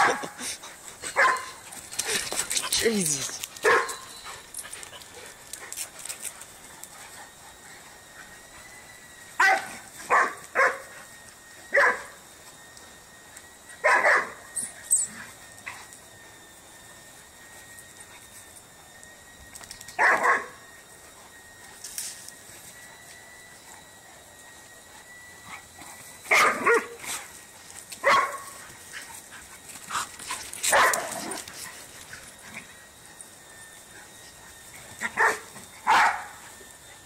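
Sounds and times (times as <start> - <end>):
dogs panting: 0.0 - 9.9, 27.0 - 36.0
dogs scuffling: 0.8 - 7.2, 26.7 - 32.3
dog barking: 3.6 - 4.0, 9.4 - 10.8, 13.8 - 14.4, 20.0 - 20.5, 26.3 - 26.9, 28.0 - 28.5, 30.7 - 31.4, 35.2 - 36.3.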